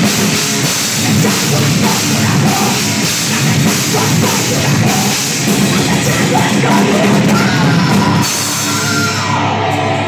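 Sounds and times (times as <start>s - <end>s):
bass guitar: 0.0s - 10.0s
distorted electric guitar: 0.0s - 10.0s
drum kit: 0.0s - 10.0s.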